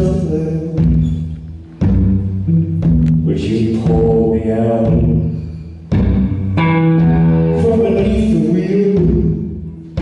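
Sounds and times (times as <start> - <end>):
guitar playing slow chords: 1.6 - 3.3, 5.9 - 9.0
low drum thump: 5.9 - 10.0.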